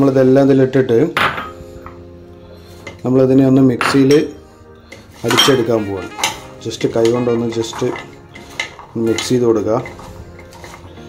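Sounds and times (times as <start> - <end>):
ingredients rustling in plastic tub: 5.1 - 11.0.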